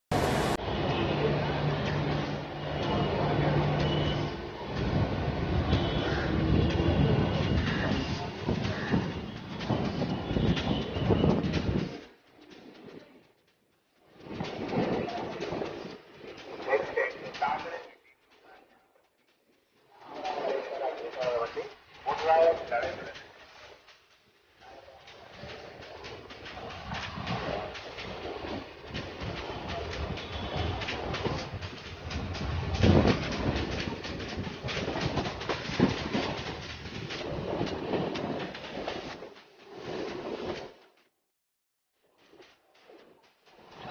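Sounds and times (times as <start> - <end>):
wheels knocking on rails: 0.1 - 40.3
electric train rumbling and rattling: 0.1 - 40.6, 42.8 - 43.9.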